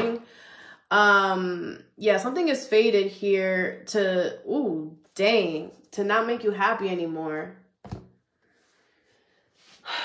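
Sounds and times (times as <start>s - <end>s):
cards knocked onto tabletop: 7.8s - 8.2s.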